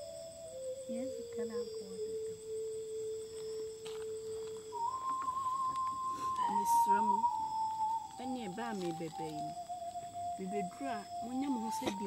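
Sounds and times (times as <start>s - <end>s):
steady pure tone: 0.0s - 12.0s.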